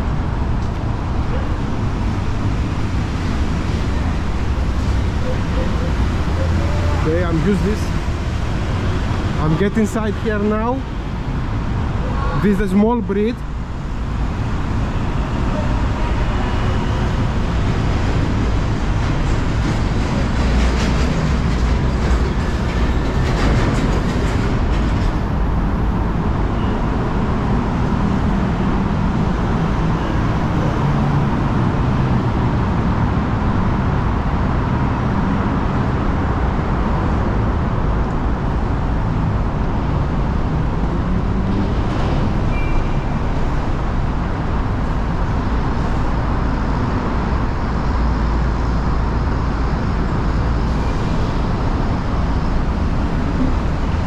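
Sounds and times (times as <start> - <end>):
city traffic rumble: 0.0 - 54.0.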